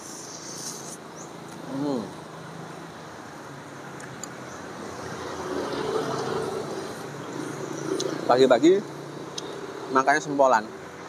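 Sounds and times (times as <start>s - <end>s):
background traffic hum: 0.0s - 11.0s
passing vehicle engine: 4.2s - 11.0s.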